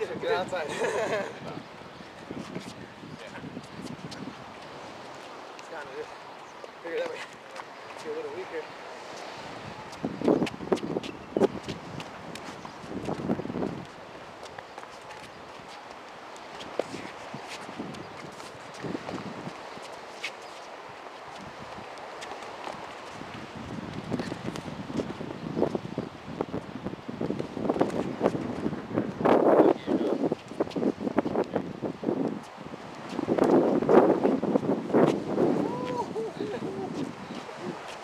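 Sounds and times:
wind on microphone: 0:00.0 - 0:38.0.

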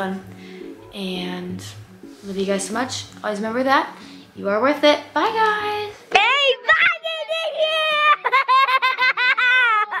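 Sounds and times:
child giggling: 0:07.5 - 0:10.0.

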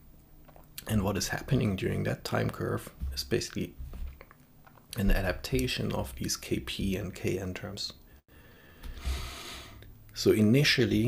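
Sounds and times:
man talking: 0:00.8 - 0:03.8, 0:04.9 - 0:08.0, 0:10.1 - 0:11.0
man breathing in: 0:08.3 - 0:09.8.

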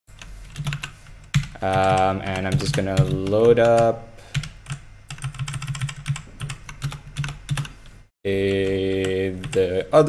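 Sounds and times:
computer keyboard keys clicking: 0:00.2 - 0:07.7.

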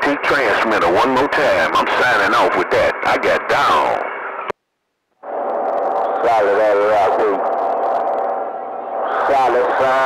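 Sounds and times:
radio hiss: 0:00.0 - 0:04.6, 0:05.2 - 0:10.0.

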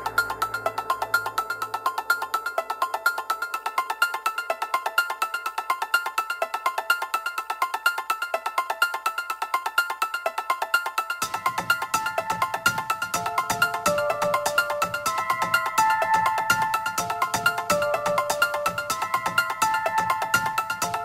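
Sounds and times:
low bass hum: 0:00.0 - 0:03.6.

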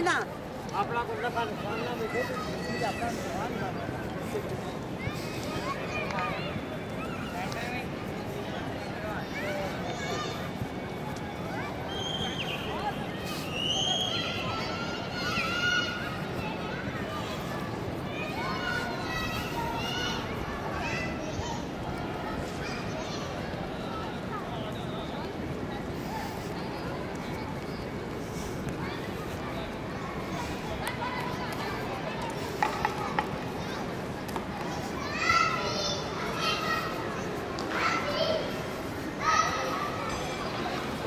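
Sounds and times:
children calling and shouting: 0:00.0 - 0:41.0
steady background noise: 0:00.0 - 0:41.0.

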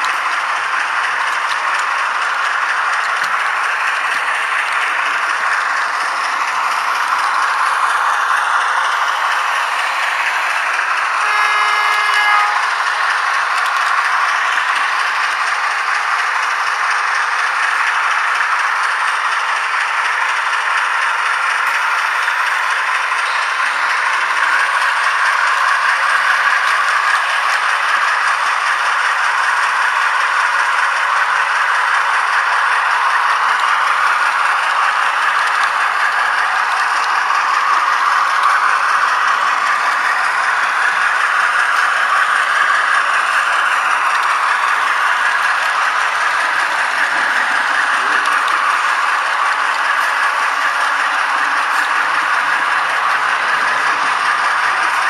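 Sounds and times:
model train wheels clattering: 0:00.0 - 0:55.0.

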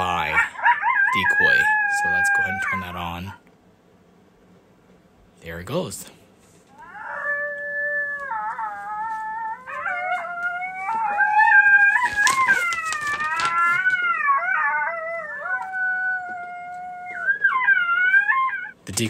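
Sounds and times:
recorded coyote howls from speaker: 0:00.0 - 0:03.4, 0:06.7 - 0:18.8.

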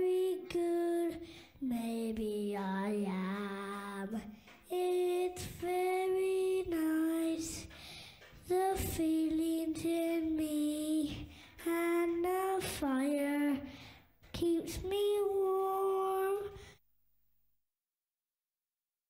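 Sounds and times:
woman singing lullaby melody: 0:00.0 - 0:07.8.

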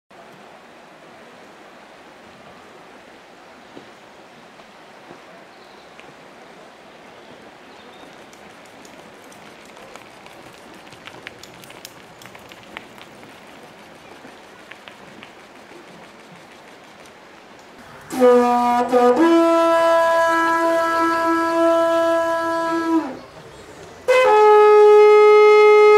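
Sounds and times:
river rushing over gravel rapids: 0:00.2 - 0:18.1
faint clicks: 0:07.9 - 0:17.8.

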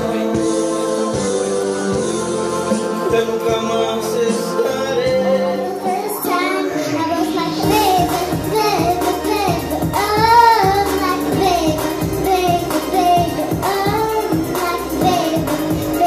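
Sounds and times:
recorded backing track: 0:00.0 - 0:16.0
child singing into microphone: 0:05.6 - 0:16.0.

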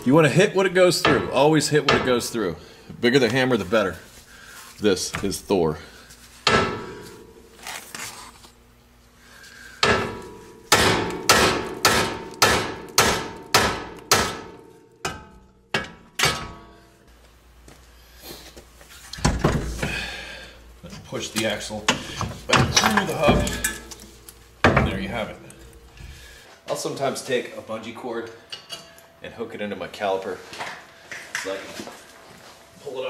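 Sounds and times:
hammer striking metal: 0:09.8 - 0:16.8.

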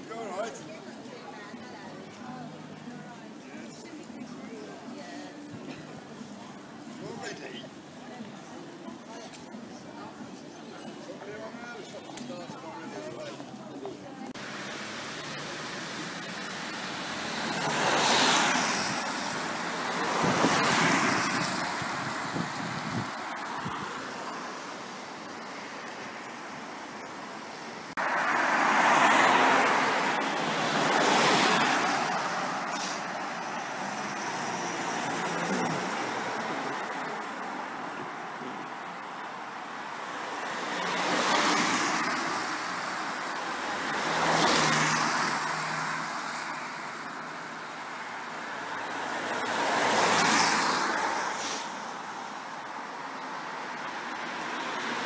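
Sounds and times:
cars passing on wet road: 0:14.4 - 0:55.0.

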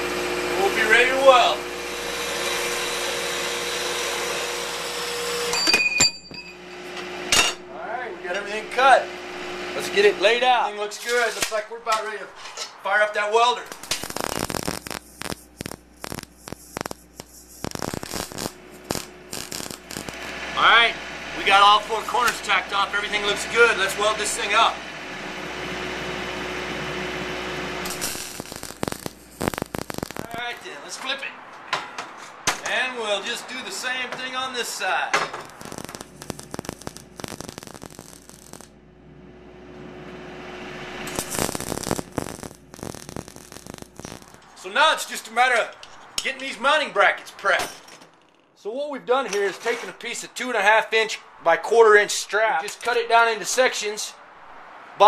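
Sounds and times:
welding arc crackling: 0:00.0 - 0:05.6, 0:08.2 - 0:31.3, 0:32.5 - 0:47.5
steady electrical hum: 0:00.0 - 0:31.4, 0:32.5 - 0:55.0
steady low hum: 0:06.4 - 0:10.6, 0:11.5 - 0:31.0.

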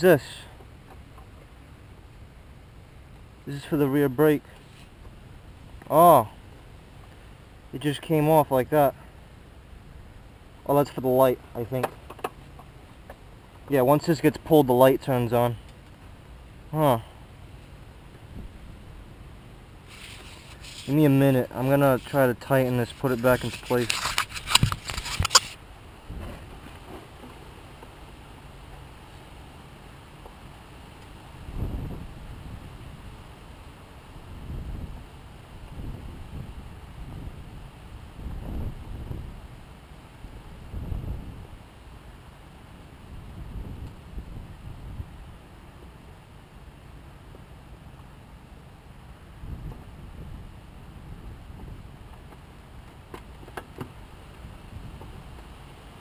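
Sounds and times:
wind buffeting microphone: 0:31.4 - 0:33.0, 0:34.3 - 0:39.7, 0:40.4 - 0:41.6, 0:43.1 - 0:45.4, 0:49.4 - 0:52.1.

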